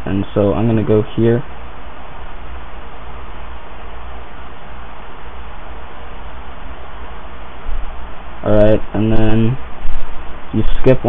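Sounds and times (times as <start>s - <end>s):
low hum: 0.0s - 11.0s
steady background hiss: 0.0s - 11.0s.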